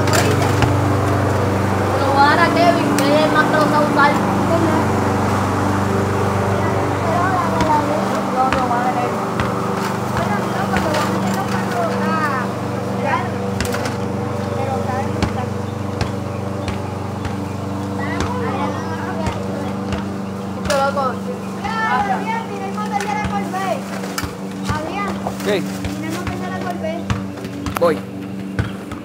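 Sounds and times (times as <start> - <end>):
lawn mower engine running: 0.0 - 29.0
voices talking: 0.0 - 29.0.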